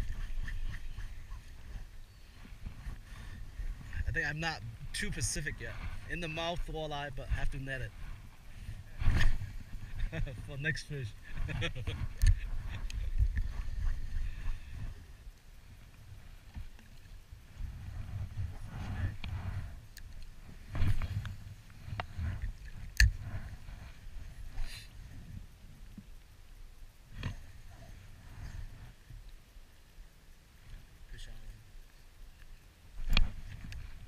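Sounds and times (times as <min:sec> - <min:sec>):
wind rumble on microphone: 0:00.0 - 0:26.2, 0:27.1 - 0:29.4, 0:32.9 - 0:34.0.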